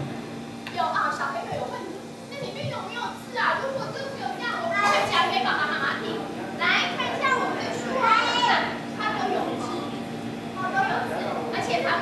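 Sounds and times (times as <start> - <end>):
young children talking: 0.7 - 12.0.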